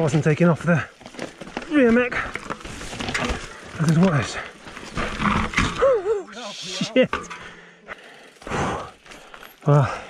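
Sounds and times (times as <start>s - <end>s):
man groaning with effort: 5.7s - 6.9s
man breathing hard: 7.3s - 10.0s.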